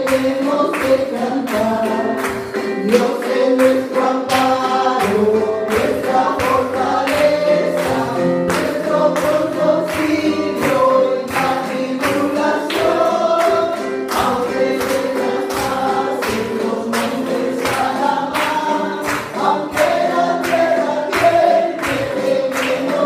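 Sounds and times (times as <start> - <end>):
congregation singing: 0.0 - 23.0.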